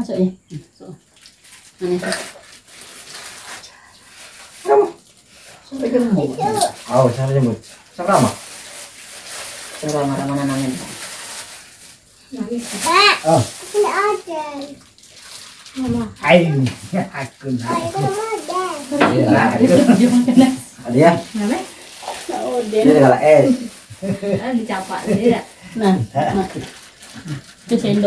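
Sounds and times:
young child vocalizing: 6.4s - 6.8s, 17.7s - 19.4s
indistinct talk: 12.3s - 14.8s, 15.8s - 28.0s.

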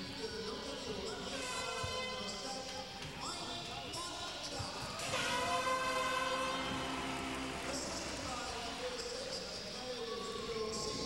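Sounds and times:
crowd hum: 4.8s - 11.0s
arena music with held notes: 5.0s - 9.0s.

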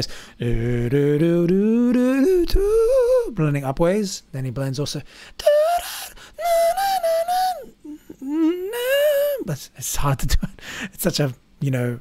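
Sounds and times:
man singing wordless notes: 0.0s - 3.7s, 5.4s - 9.7s.

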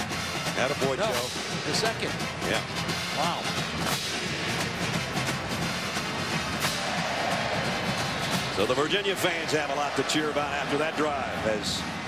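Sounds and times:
marching band brass and drums: 0.0s - 12.0s
stadium crowd cheering: 5.7s - 12.0s.

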